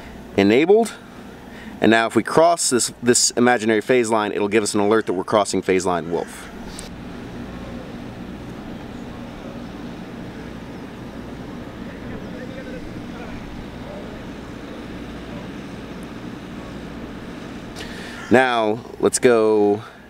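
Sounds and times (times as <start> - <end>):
low mechanical hum: 0.0 - 20.0
outdoor background noise: 0.0 - 20.0.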